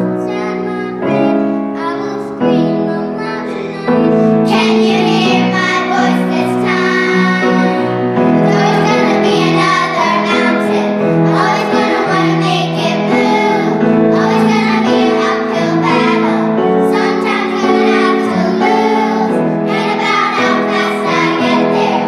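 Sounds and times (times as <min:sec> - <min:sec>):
girls singing a pop song: 0:00.0 - 0:22.0.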